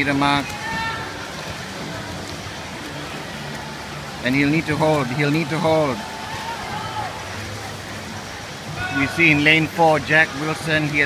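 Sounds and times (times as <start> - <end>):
distant spectators' voices: 0.0 - 11.0
swimmers splashing: 0.0 - 11.0.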